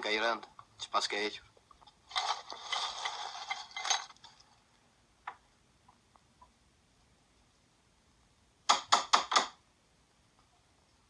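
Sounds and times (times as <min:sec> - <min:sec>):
charcoal lumps clattering: 0:02.1 - 0:04.4.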